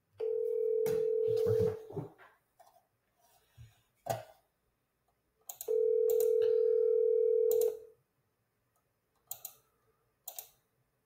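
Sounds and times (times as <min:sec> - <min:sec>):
telephone ringback tone: 0:00.2 - 0:01.8, 0:05.7 - 0:07.8.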